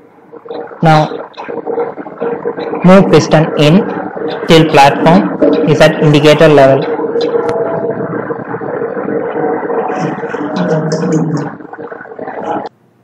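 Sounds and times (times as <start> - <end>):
muffled voices: 0.3 - 12.7.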